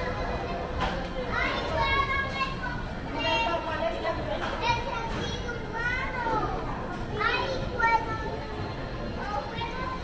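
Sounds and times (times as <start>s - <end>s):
murmur of shoppers: 0.0s - 10.0s
child talking and calling out: 4.7s - 8.5s.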